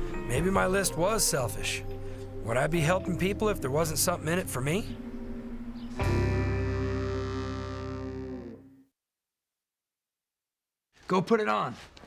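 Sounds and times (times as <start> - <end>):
guitar chord ringing: 6.0 - 8.6.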